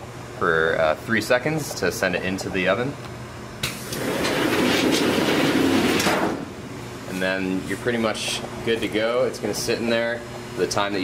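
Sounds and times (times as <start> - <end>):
machine frame rattling rumble: 4.0 - 6.5.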